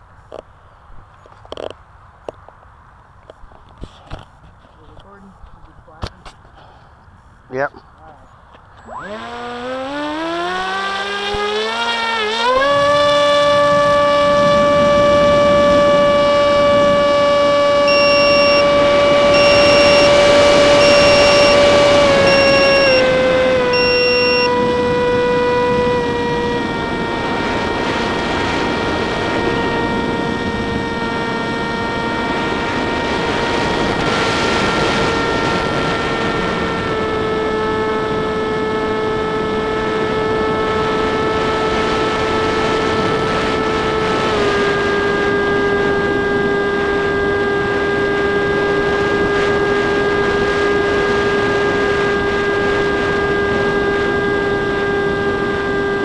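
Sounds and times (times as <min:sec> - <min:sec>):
model aircraft motor whining: 0:08.5 - 0:56.0
short high beeps: 0:17.8 - 0:24.6.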